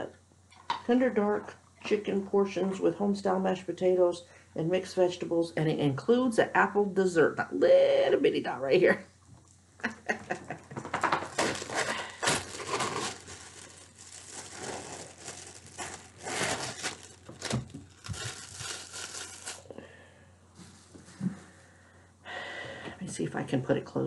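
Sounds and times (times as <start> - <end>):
plastic film crinkling and tearing: 11.0 - 19.7.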